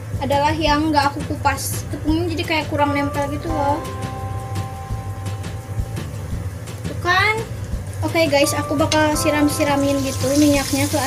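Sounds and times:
steady low hum: 0:00.0 - 0:10.4
hot oil sizzling: 0:00.0 - 0:11.0.

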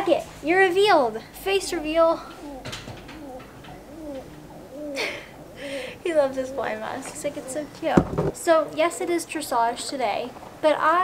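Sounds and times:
pigeon cooing: 0:01.2 - 0:08.0.

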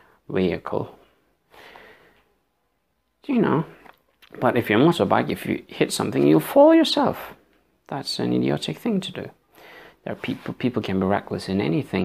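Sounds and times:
man breathing faintly: 0:01.2 - 0:02.4, 0:09.4 - 0:10.1.

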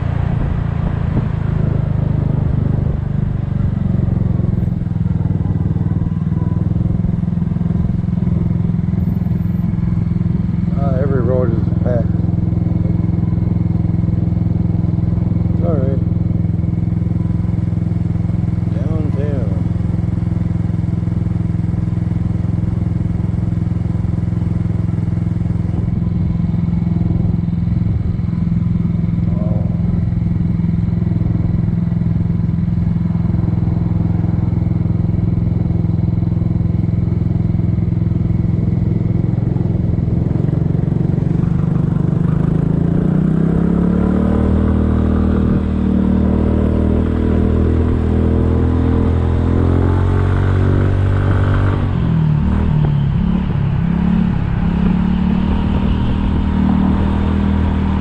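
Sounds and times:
scooter engine running and idling: 0:00.0 - 0:44.0.

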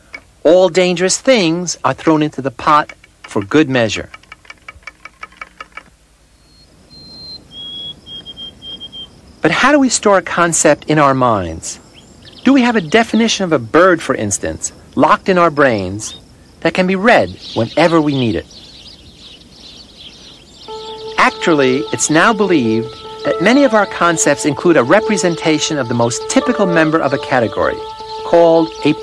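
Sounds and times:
faint outdoor background noise: 0:00.0 - 0:29.0
small birds chirping: 0:05.2 - 0:09.5, 0:10.6 - 0:29.0
bird whistling: 0:06.4 - 0:09.1, 0:20.6 - 0:29.0
held music chord: 0:20.7 - 0:29.0.

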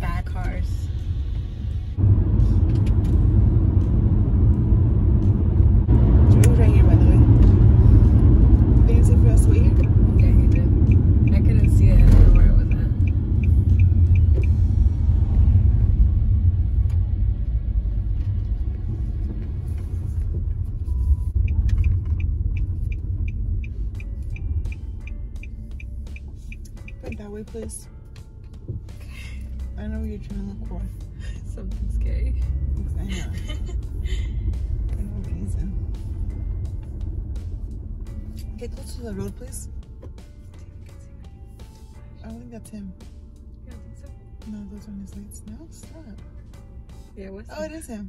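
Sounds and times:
car engine and road noise: 0:00.0 - 0:48.0
turn signal ticking: 0:02.0 - 0:15.6, 0:16.7 - 0:46.7.

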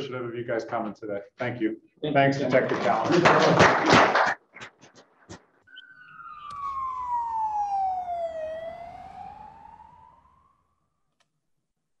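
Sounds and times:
gliding logo tone: 0:05.7 - 0:10.8.

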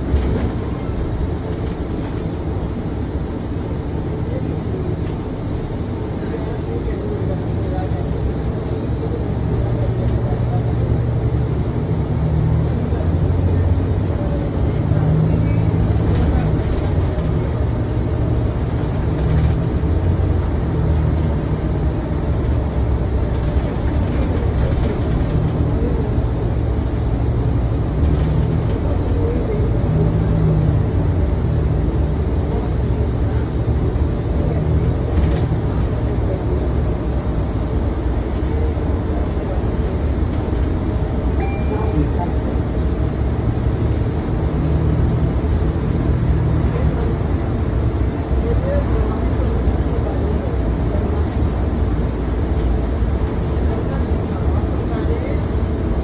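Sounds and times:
bus drivetrain hum: 0:00.0 - 0:56.0
low engine drone: 0:00.0 - 0:56.0
road noise: 0:00.0 - 0:56.0.

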